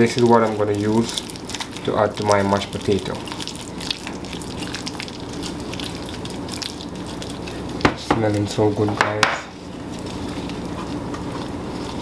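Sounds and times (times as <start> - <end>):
wet squishing of mixing: 0.0 - 12.0.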